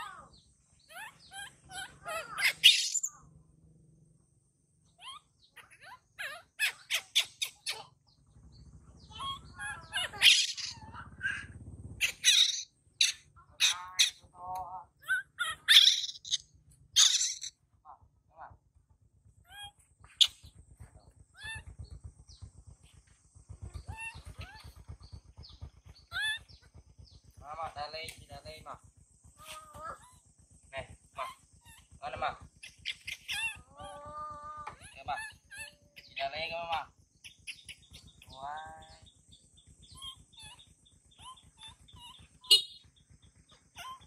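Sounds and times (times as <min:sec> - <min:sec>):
infant monkey squeaky calls: 0:00.0 - 0:03.3, 0:04.9 - 0:08.1, 0:09.0 - 0:14.3, 0:15.0 - 0:17.6, 0:19.4 - 0:20.5, 0:21.3 - 0:22.4, 0:23.7 - 0:25.2, 0:26.0 - 0:27.2, 0:29.4 - 0:30.3, 0:31.1 - 0:39.1, 0:39.8 - 0:44.0.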